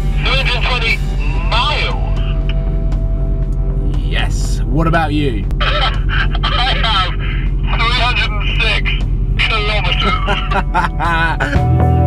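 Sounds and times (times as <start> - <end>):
low car hum: 0.0 - 12.0
people talking: 0.2 - 2.5, 3.8 - 11.6
talk over walkie-talkie: 0.2 - 2.7, 5.5 - 10.6
people laughing: 9.8 - 11.7.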